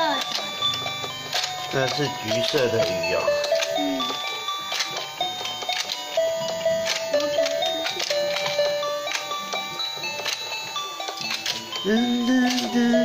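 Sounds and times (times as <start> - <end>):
toy electronic tune: 0.0 - 13.0
toy mechanism clicking: 0.0 - 13.0.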